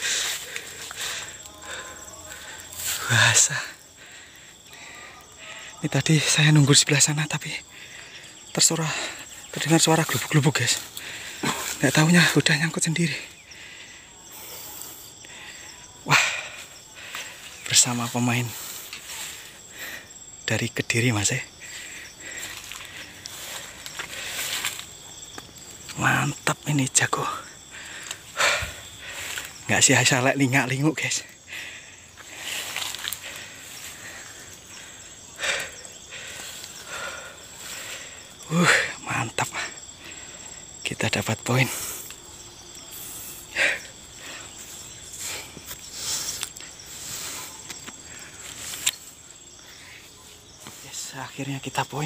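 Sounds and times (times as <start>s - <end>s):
man's voice: 0.0s - 3.8s, 5.5s - 7.7s, 8.6s - 13.3s, 17.7s - 19.3s, 20.5s - 21.5s, 25.9s - 27.5s
insects chirring: 0.0s - 52.0s.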